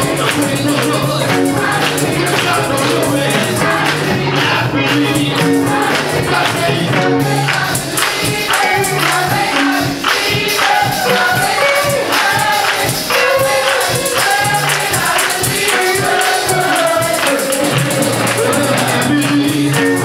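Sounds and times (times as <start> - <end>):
percussion beat: 0.0 - 20.0
women's choir singing: 0.0 - 20.0.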